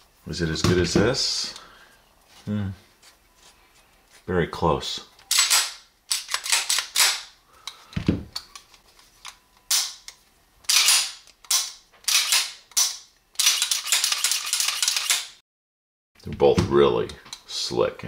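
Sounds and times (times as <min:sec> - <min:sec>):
metallic pistol clicks and rattles: 0:05.3 - 0:07.3, 0:08.4 - 0:15.4.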